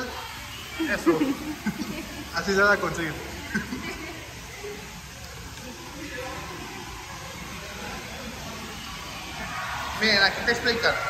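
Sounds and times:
hissing hall background noise: 0.0s - 11.0s.

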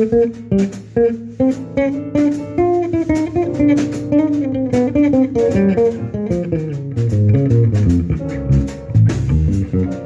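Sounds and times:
drum and cymbal hits: 0.0s - 10.0s
electric bass plucked: 0.0s - 10.0s.

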